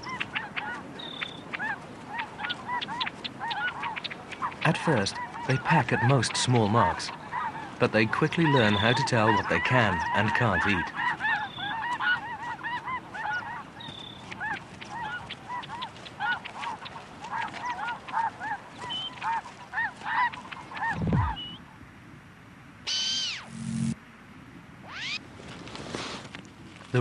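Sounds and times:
high sweeping bird calls: 0.0 - 17.0, 17.6 - 21.7, 22.9 - 23.5, 24.8 - 25.2
flock of geese calling: 0.0 - 21.6, 22.9 - 23.5.

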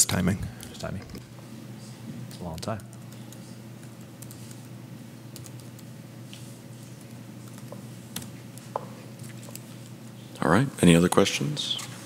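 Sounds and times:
low room hum: 0.0 - 12.0
typing on a laptop keyboard: 5.3 - 5.9.

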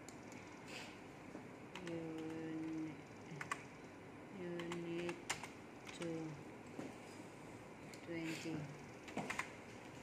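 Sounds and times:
computer keyboard typing: 1.7 - 3.7, 4.4 - 6.3, 9.0 - 9.6.

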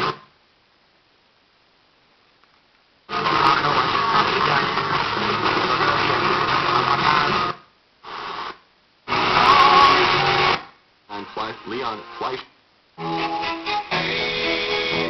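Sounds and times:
radio music from boombox: 0.0 - 0.3, 3.1 - 15.0.

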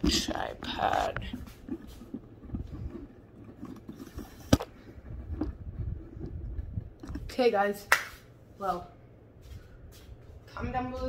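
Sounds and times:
rubbing and bumping on microphone: 0.0 - 8.3.

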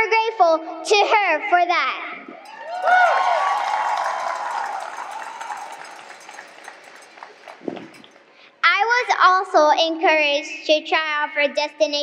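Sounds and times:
people cheering: 2.4 - 7.9
audience applauding: 2.5 - 8.0.

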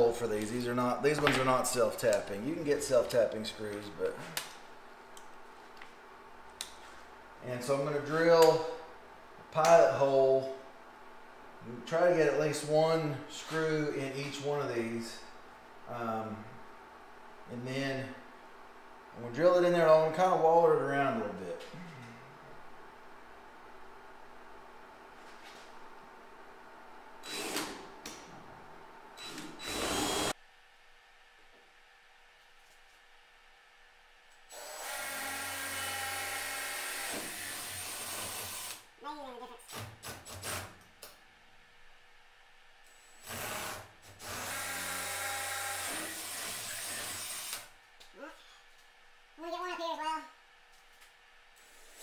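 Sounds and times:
cordless drill drilling metal: 27.2 - 27.8, 29.2 - 30.3, 34.5 - 38.8, 43.1 - 47.6
drill trigger bursts: 27.2 - 27.8, 29.2 - 30.3, 34.5 - 38.8, 42.9 - 47.7.

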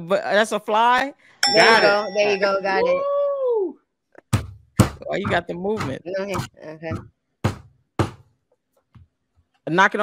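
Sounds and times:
voice holding falling ooh: 2.8 - 3.8
sharp knocks on hard surface: 4.3 - 8.3.

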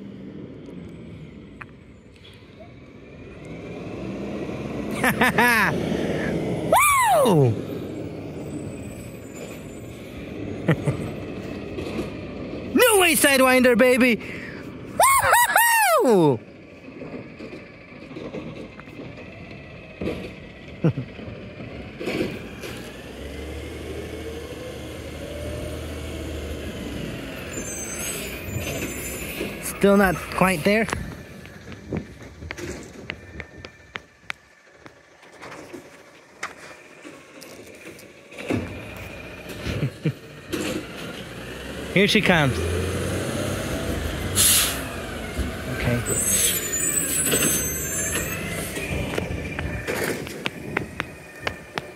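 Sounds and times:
garbage truck engine rumbling: 0.0 - 51.9
short falling-pitch voice sounds: 6.6 - 7.7, 15.0 - 16.4.

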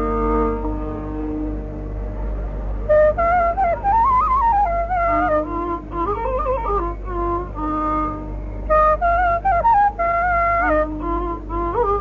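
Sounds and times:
bamboo flute playing: 0.0 - 12.0
steady low hum: 0.0 - 12.0.

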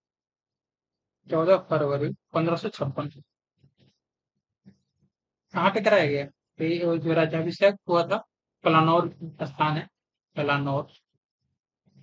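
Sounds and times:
man speaking: 5.5 - 10.9.

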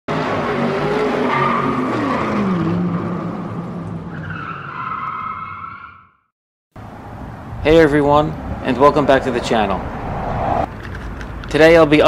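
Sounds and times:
tires squealing: 0.1 - 6.1.

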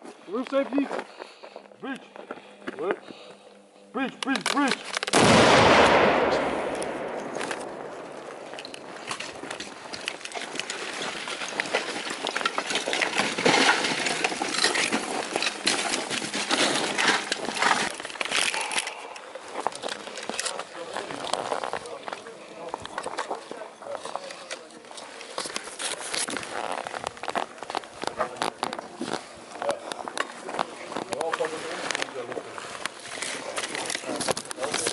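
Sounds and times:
explosion boom: 5.2 - 9.0
debris clattering and clinking: 8.4 - 19.1.

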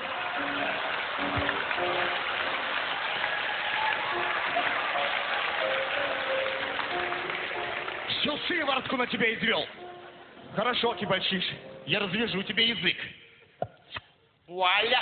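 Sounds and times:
audience applauding: 0.0 - 9.4
background music: 0.0 - 15.0.

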